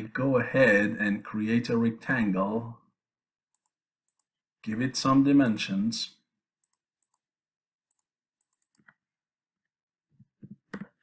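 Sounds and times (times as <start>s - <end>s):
computer mouse clicks: 3.5s - 4.3s, 6.6s - 7.3s, 7.9s - 9.0s.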